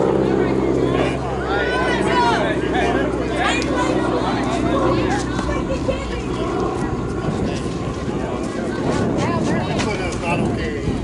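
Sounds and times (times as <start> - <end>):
players talking and calling out: 0.0 - 11.0
wind rumble on microphone: 0.0 - 11.0.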